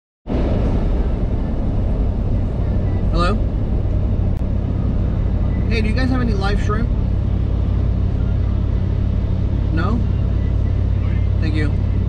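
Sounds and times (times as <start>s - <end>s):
road and engine rumble: 0.2s - 12.0s.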